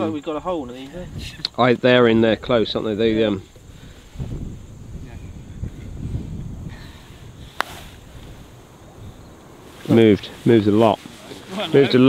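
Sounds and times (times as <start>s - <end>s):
wind rumbling on microphone: 0.2s - 12.0s.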